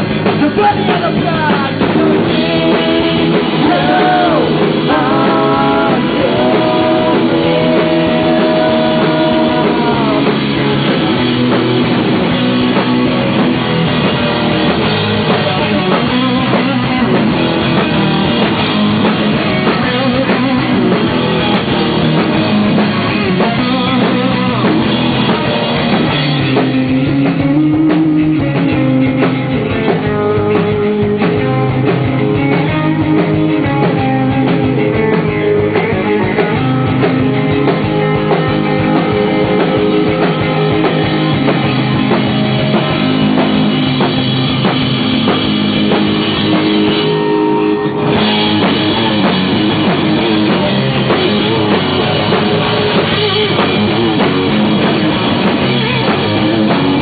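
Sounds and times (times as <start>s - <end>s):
bass guitar: 0.0s - 57.0s
drum kit beat: 0.0s - 57.0s
electric guitar: 0.0s - 57.0s.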